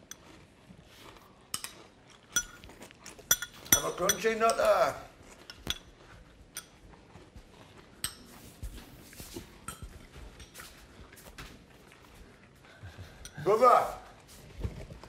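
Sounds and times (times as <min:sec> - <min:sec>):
spoon clinking against bowl: 0:01.6 - 0:02.7, 0:03.3 - 0:05.9.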